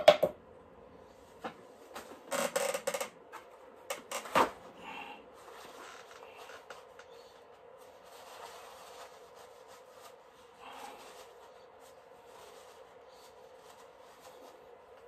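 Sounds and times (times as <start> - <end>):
room hum: 0.0 - 15.0
brush rubbing on canvas: 7.3 - 15.0.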